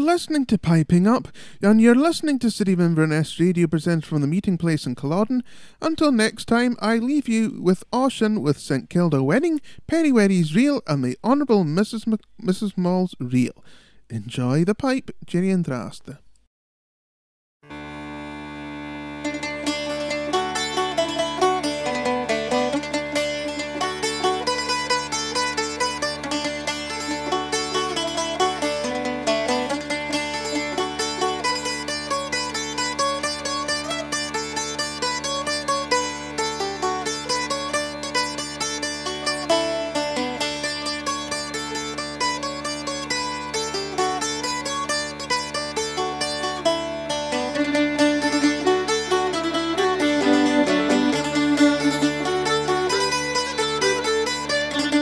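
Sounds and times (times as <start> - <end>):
bagpipe chanter melody: 17.6 - 55.0
bagpipe drones: 17.6 - 55.0.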